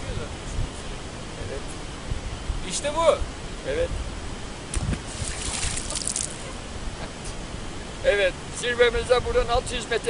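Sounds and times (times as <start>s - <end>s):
water sloshing against rocks: 4.8s - 6.5s
hissing water surge: 5.0s - 6.5s.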